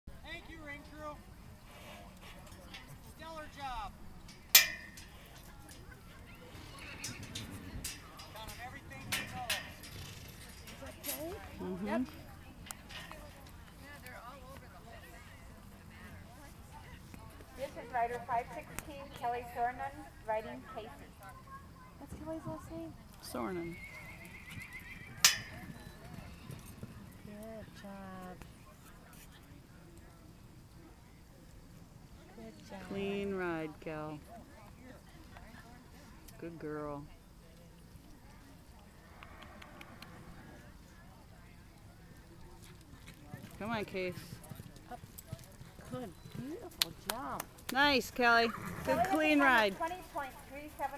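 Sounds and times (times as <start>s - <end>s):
hoofbeats on dirt: 4.3s - 15.3s, 22.0s - 29.4s, 42.0s - 50.9s
horse whinnying: 23.6s - 25.6s, 48.3s - 49.2s.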